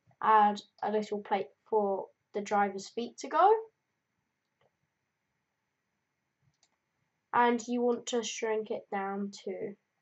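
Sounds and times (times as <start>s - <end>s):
computer mouse click: 6.5s - 6.8s.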